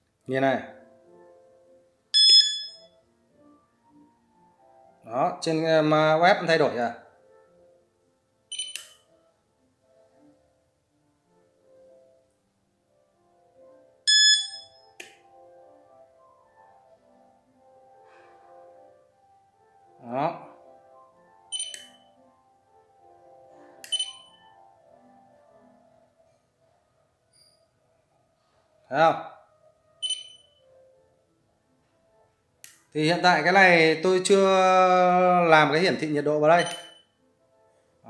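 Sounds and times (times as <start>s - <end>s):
bright electronic ding: 2.2s - 2.9s, 14.1s - 14.9s, 36.6s - 37.0s
sharp click: 8.6s - 9.0s, 21.6s - 22.0s, 36.6s - 37.0s.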